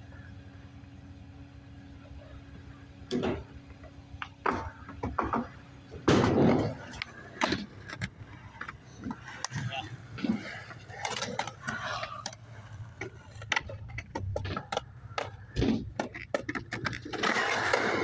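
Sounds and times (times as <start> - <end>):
skateboard wheels rolling: 0.1 - 18.0
skateboard clicks and knocks: 3.0 - 18.0
skateboard hitting concrete: 4.2 - 18.0.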